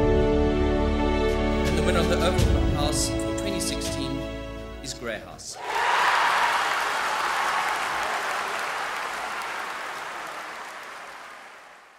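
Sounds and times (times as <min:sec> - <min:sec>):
audience applauding: 0:05.6 - 0:11.9.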